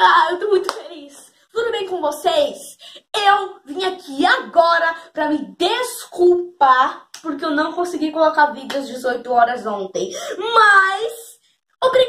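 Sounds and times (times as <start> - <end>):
boy speaking: 0.0 - 12.0
sharp hand clap: 0.6 - 0.9.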